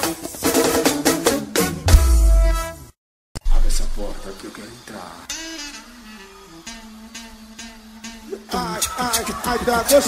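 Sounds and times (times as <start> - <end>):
low bass hit: 1.9 - 2.6, 3.4 - 4.2
person singing: 8.3 - 10.0.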